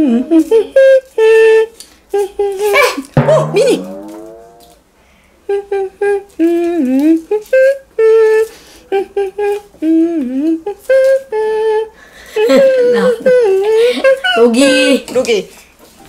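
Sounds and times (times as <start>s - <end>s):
person singing wordless syllables: 0.0s - 2.7s, 5.5s - 13.8s.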